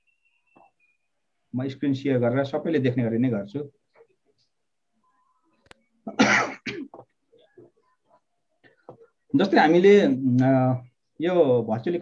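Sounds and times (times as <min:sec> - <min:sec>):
person clearing throat: 0:06.1 - 0:07.0.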